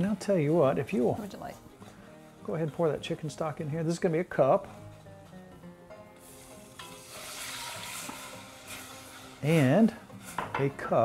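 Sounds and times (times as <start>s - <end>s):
liquid pouring and sizzling in pan: 5.8s - 11.0s.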